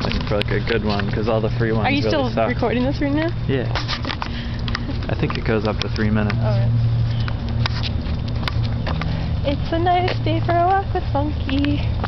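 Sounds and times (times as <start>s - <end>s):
footsteps on concrete: 0.0s - 12.0s
steady low hum: 0.0s - 12.0s.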